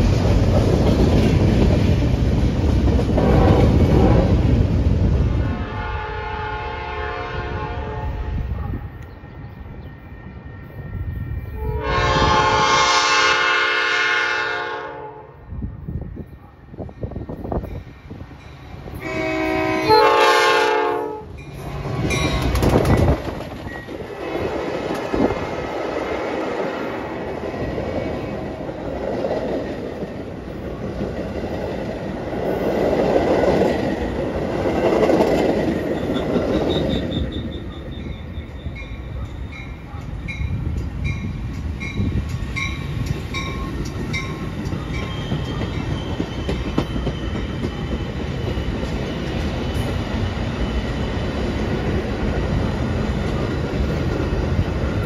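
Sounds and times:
distant train rolling by: 0:00.0 - 0:55.0
train rolling past: 0:00.0 - 0:55.0
wheels clattering on rails: 0:21.5 - 0:25.4, 0:28.8 - 0:52.2.

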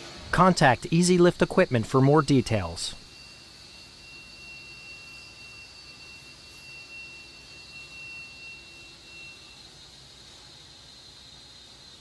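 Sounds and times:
high-pitched motor whine: 0:00.0 - 0:12.0.

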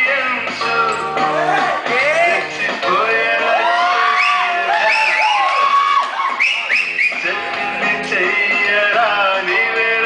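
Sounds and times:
dance music: 0:00.0 - 0:10.0
audience whooping and cheering: 0:03.4 - 0:07.3.

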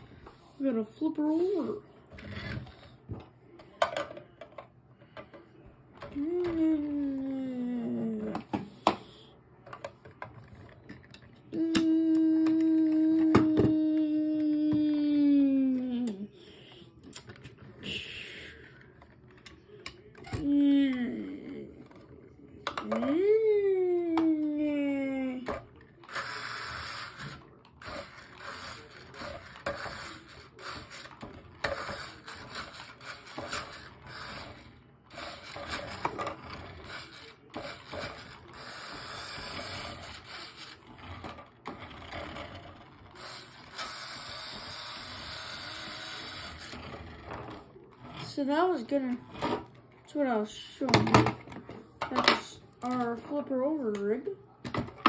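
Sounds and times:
toy car electric motor whirring: 0:25.2 - 0:49.6.

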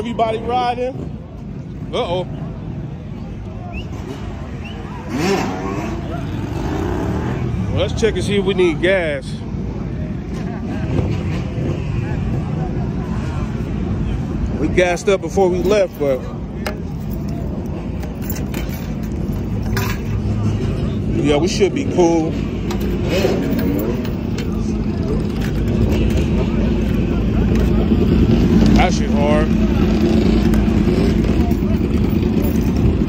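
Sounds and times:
crowd voices: 0:00.0 - 0:33.0
low engine rumble: 0:00.0 - 0:33.0
motorcycle engine revving: 0:05.0 - 0:07.8, 0:22.7 - 0:33.0.

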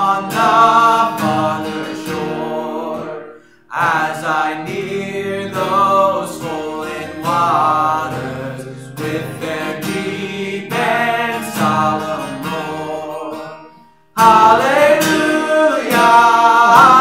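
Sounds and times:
man singing a hymn: 0:00.0 - 0:13.6, 0:14.2 - 0:17.0
strummed acoustic guitar: 0:00.0 - 0:17.0.

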